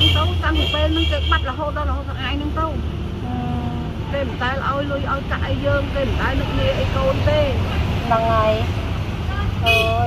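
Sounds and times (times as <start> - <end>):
woman talking: 0.0 - 8.7
vehicle low rumble: 0.0 - 10.0.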